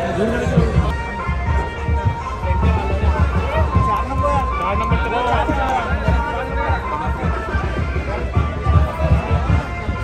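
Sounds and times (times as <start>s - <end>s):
crowd talking and calling out: 0.0s - 10.0s
music with pulsing drumbeat: 0.0s - 10.0s.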